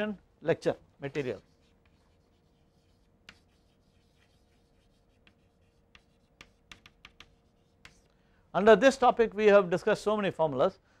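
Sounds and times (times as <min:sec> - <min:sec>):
chalk tapping on chalkboard: 0:01.2 - 0:08.1.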